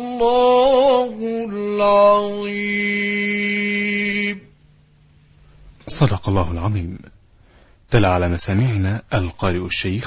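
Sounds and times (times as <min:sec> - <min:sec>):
man reciting melodically: 0:00.0 - 0:04.6, 0:05.8 - 0:07.2, 0:07.9 - 0:10.0
faint background noise: 0:00.0 - 0:10.0.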